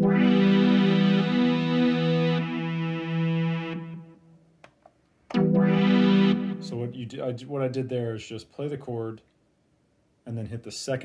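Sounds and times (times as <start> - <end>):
synthesizer chord: 0.0 - 4.4, 5.3 - 7.4.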